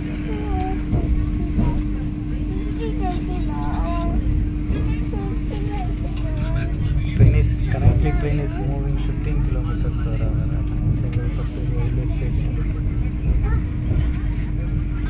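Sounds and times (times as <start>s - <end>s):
passengers chatting: 0.0s - 15.0s
train cabin low rumble: 0.0s - 15.0s.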